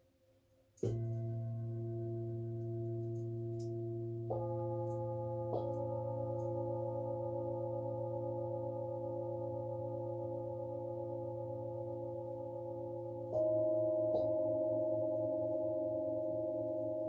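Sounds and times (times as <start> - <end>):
metal singing bowls ringing: 0.8 - 17.0.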